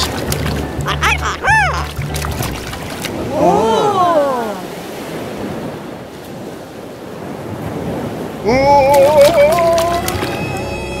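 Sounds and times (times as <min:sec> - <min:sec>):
surf washing over sand: 0:02.6 - 0:10.7.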